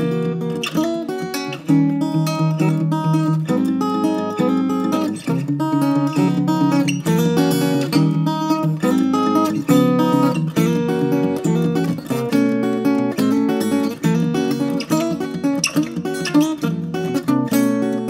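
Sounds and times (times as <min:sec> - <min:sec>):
fingerstyle acoustic guitar: 0:00.0 - 0:18.0.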